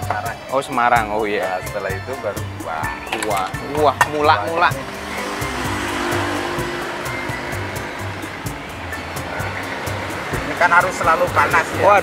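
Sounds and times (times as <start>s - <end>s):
background music with beat: 0.0s - 12.0s.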